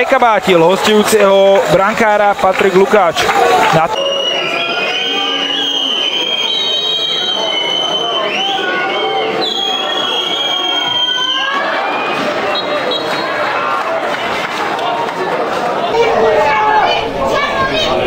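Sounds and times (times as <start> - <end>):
crowd chattering and calling: 0.0 - 18.0
high drawn-out whistles: 3.9 - 13.4.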